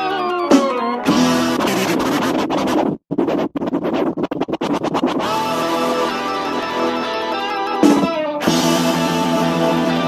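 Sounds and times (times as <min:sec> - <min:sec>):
record scratching: 0:00.0 - 0:10.0
stuttering music track: 0:00.0 - 0:10.0.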